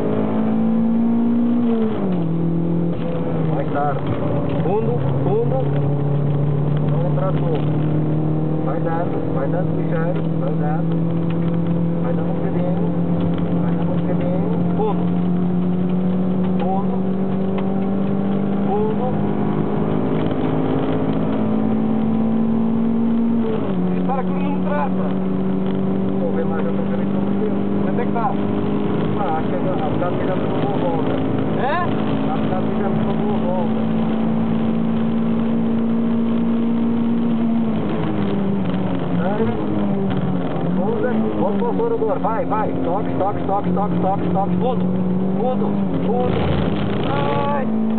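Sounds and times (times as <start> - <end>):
car engine revving from inside: 0.0 - 47.9.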